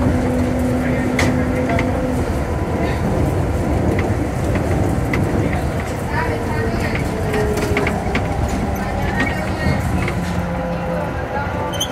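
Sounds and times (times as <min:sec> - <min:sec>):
tyres and car body rumbling: 0:00.0 - 0:11.9.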